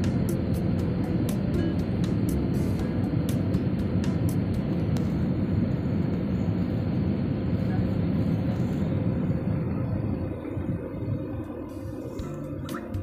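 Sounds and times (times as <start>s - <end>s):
jet cabin engine rumble: 0.0s - 13.0s.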